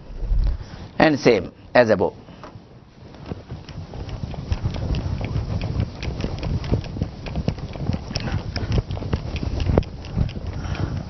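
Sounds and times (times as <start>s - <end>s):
duster scrubbing a whiteboard: 2.2s - 11.0s.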